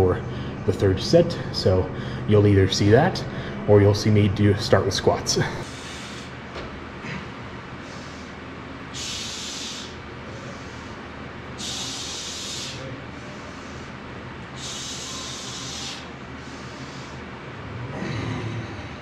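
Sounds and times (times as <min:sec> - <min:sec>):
hissing exhales: 0:07.8 - 0:11.0, 0:11.6 - 0:14.0, 0:14.6 - 0:17.2
quiet breaths: 0:07.8 - 0:17.3.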